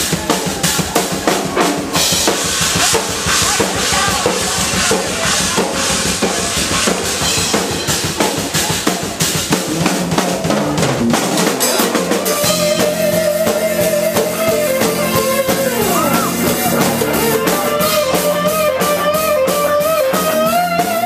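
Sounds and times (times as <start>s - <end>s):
drum kit and hand percussion: 0.0s - 21.0s.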